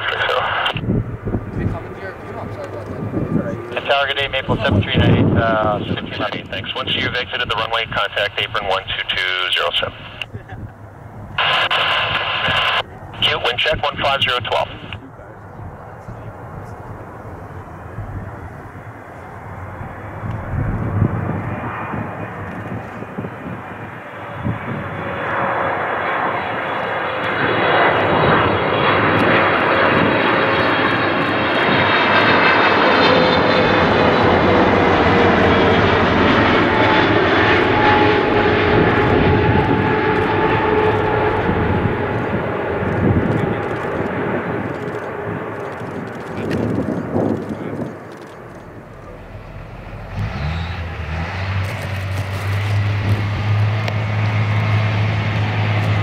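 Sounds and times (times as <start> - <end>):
jet airliner passing overhead: 0.0 - 56.0.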